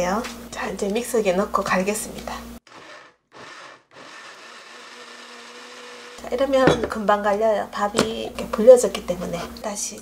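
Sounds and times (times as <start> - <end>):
blender running: 2.6 - 6.4.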